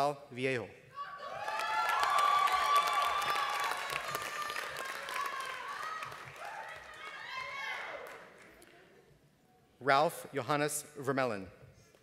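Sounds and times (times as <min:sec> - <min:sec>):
audience applauding: 0:01.4 - 0:08.7.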